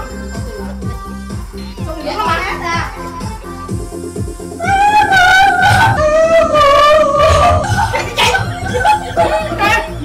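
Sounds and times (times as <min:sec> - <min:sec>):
childlike voice singing: 0:00.0 - 0:07.6
karaoke backing track with beat: 0:00.0 - 0:10.0.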